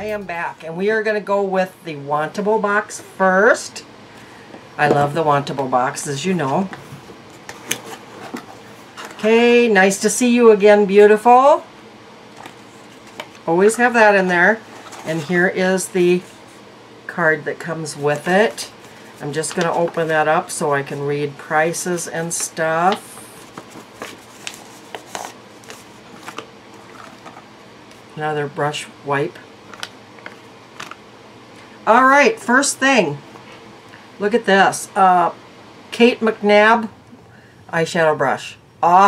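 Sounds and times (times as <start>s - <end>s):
paper card rustling: 22.0s - 28.1s
packaging being handled: 22.9s - 28.1s.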